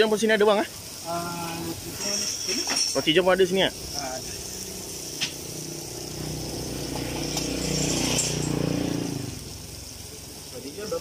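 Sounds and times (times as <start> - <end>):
vehicle engine passing by: 4.3 - 10.0.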